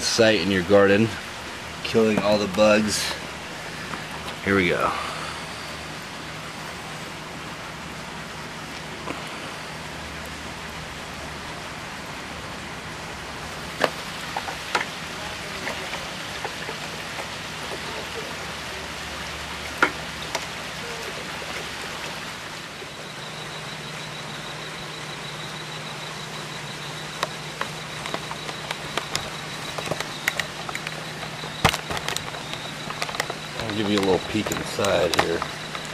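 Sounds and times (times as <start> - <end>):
air pump humming: 0.0 - 12.0, 13.0 - 35.9
air stones bubbling in water: 26.9 - 35.9
handling knocks and clicks: 27.2 - 35.9.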